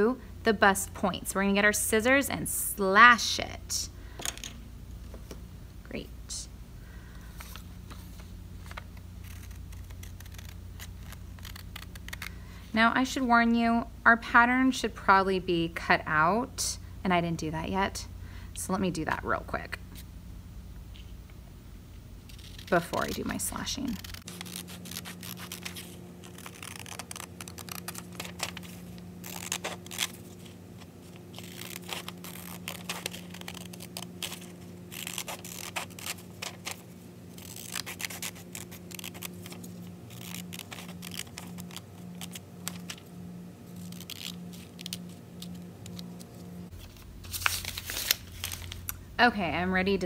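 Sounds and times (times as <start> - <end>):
scissors snipping paper: 9.2 - 12.3, 22.3 - 30.1, 31.3 - 36.8, 37.4 - 43.0
paper rustling and crinkling: 22.3 - 43.0, 43.7 - 49.0.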